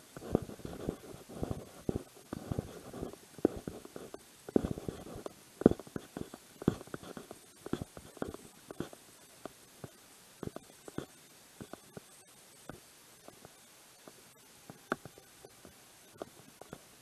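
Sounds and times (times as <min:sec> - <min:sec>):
microphone thumps and rubbing: 0:00.2 - 0:09.0.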